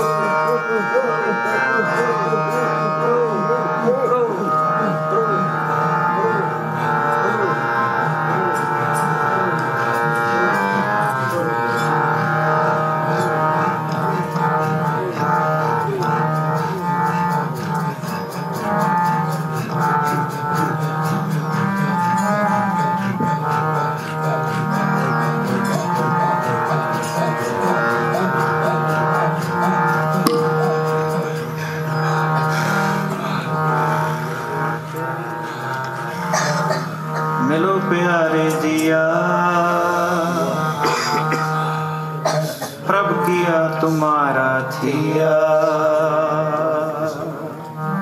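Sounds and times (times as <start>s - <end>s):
harmonium droning chord and melody: 0.0s - 48.0s
person singing: 0.0s - 48.0s
tabla: 27.4s - 33.1s.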